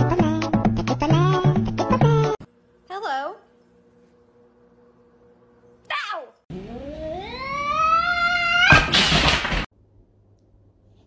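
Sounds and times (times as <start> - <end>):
cat yowl rising in pitch: 7.0 - 8.9
cat meowing: 7.2 - 8.8.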